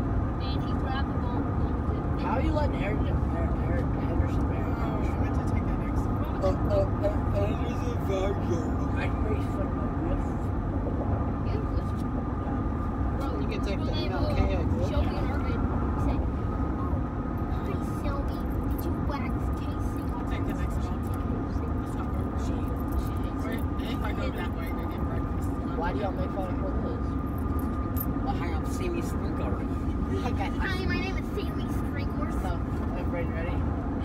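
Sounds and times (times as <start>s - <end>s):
muffled voices: 0.4s - 34.0s.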